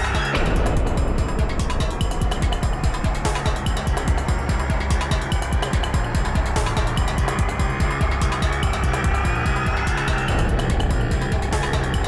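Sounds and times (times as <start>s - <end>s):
fast pulsing beat: 0.0s - 12.0s
tense drama background music: 0.0s - 12.0s.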